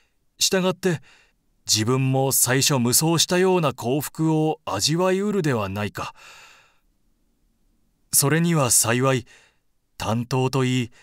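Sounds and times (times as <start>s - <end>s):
soft breath out: 6.2s - 6.9s, 9.3s - 9.7s.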